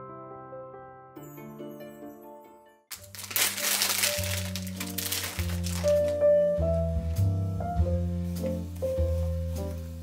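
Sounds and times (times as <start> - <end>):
plastic bag crinkling: 2.9 - 6.4
background music with bass line: 5.6 - 10.0.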